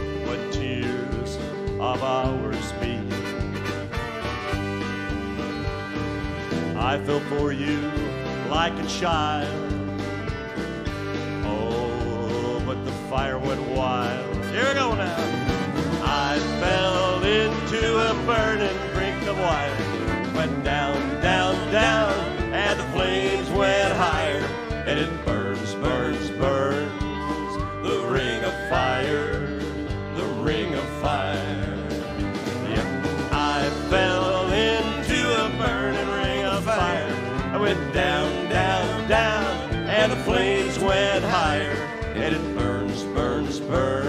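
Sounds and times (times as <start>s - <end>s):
acoustic and electric guitars: 0.0s - 44.0s
live country band music: 0.0s - 44.0s
steady drum beat: 0.0s - 44.0s.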